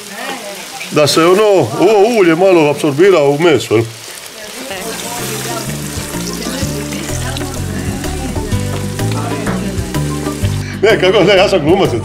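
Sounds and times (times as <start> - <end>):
food sizzling in oil: 0.0 - 11.5
background music with bass line: 4.8 - 12.0.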